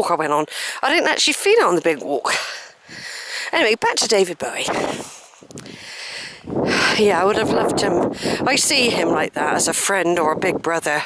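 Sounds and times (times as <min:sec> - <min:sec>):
faint steady hiss: 0:00.0 - 0:07.4.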